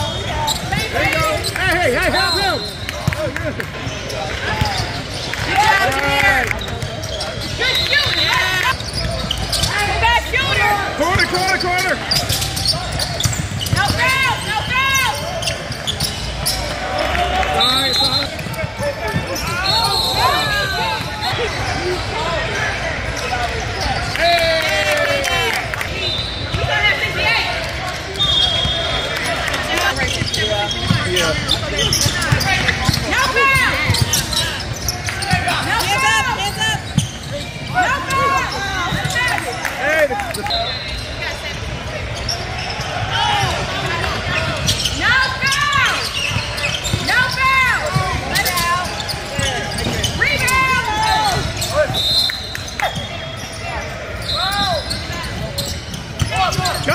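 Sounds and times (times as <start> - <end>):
sneakers squeaking on hardwood: 0.0 - 3.2, 3.8 - 16.8, 17.5 - 22.0, 28.0 - 43.6, 44.2 - 56.9
shouts and chatter echoing: 0.0 - 56.9
basketballs bouncing: 2.9 - 16.6, 30.0 - 39.6, 43.4 - 52.0, 54.5 - 56.9.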